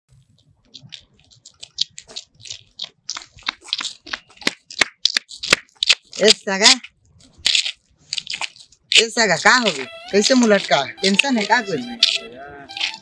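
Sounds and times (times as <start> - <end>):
crunching and rustling: 0.1 - 13.0.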